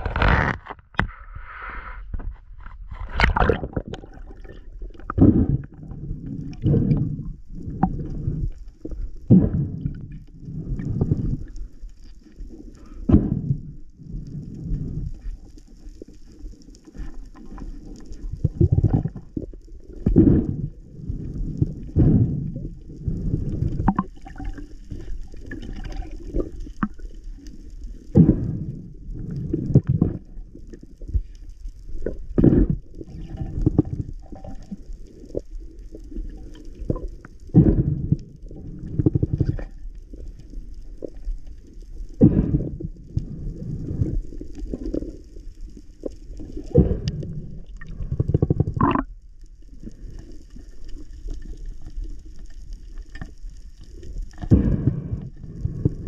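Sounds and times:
muffled water sloshing: 2.9 - 16.0.

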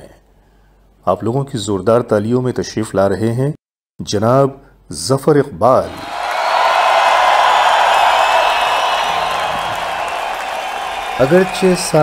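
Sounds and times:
crowd applauding: 5.9 - 12.0.

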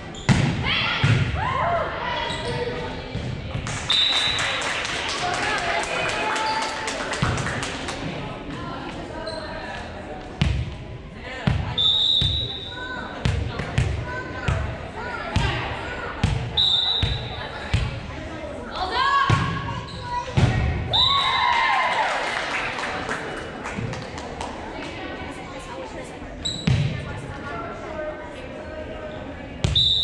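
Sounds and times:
whistle blasts: 3.9 - 4.4, 11.8 - 12.8, 16.6 - 17.3, 20.9 - 21.2, 29.7 - 30.0.

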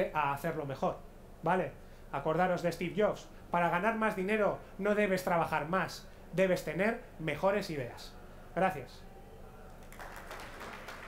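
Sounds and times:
audience applause: 9.7 - 11.0.

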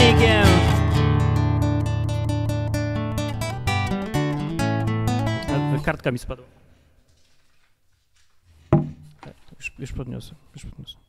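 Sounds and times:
rustling and handling knocks: 6.6 - 9.6.

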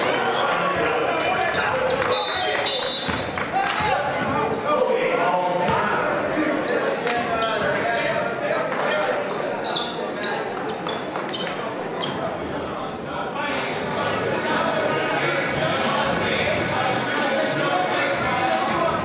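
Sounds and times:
voices echoing in gym: 0.0 - 19.0.

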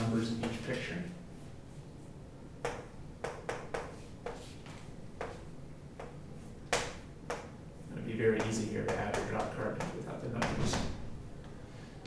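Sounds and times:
chalk tapping on chalkboard: 2.6 - 7.5, 8.3 - 10.9.

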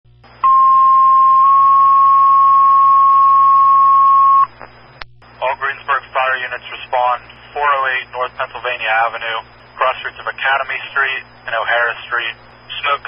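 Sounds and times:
radio click: 4.5 - 5.3
dispatcher speaking over radio: 5.4 - 13.0.

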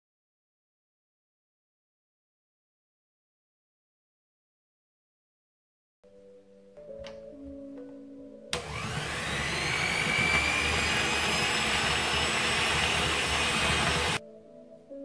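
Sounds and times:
electric hand mixer whining: 8.6 - 14.2.

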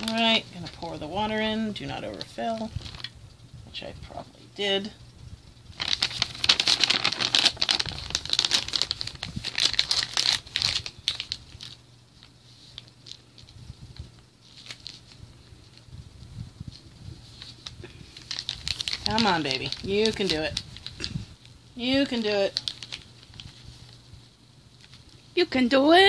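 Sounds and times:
plastic bag crinkling: 0.0 - 3.2, 5.7 - 15.9, 16.7 - 24.1, 24.7 - 25.2.

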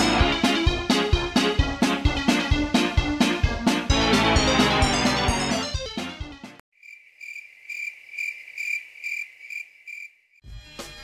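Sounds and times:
cricket chirping: 6.8 - 10.3.

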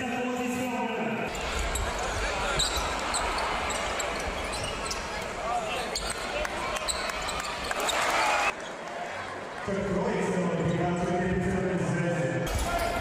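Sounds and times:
crowd noise and voices: 0.0 - 13.0.

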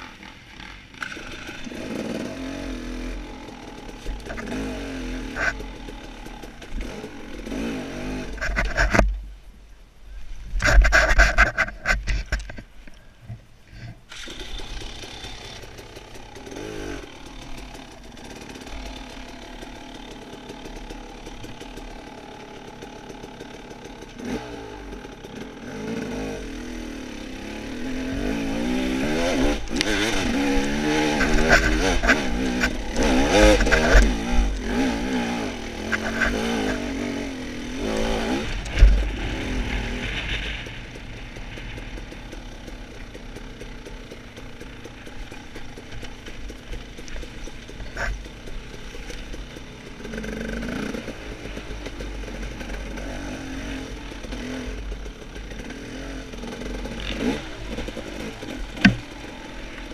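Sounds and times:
dirt bike engine revving: 0.0 - 8.9, 14.1 - 59.9
sharp thump: 58.8 - 59.1.

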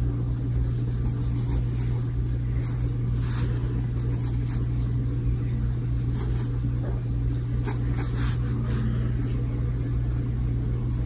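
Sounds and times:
steady low hum: 0.0 - 11.0
pencil scratching on paper: 1.0 - 4.7, 6.1 - 6.5.

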